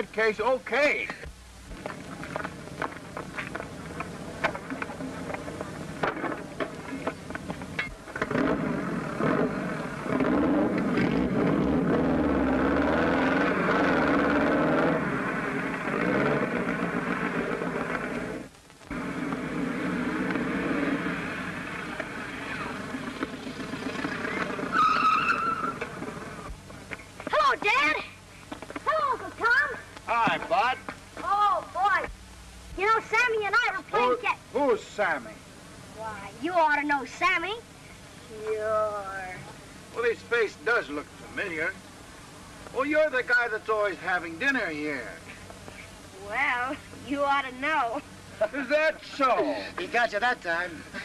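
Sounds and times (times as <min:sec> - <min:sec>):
motorcycle engines running: 0:01.2 - 0:32.1.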